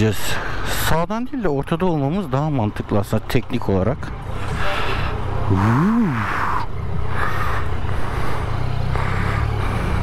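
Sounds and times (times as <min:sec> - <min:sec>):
motorcycle engine low rumble: 0:02.1 - 0:10.0.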